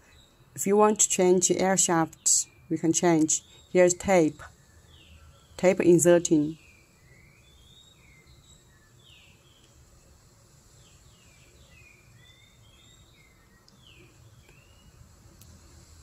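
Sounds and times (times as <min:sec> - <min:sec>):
small bird chirping: 0:00.0 - 0:15.2.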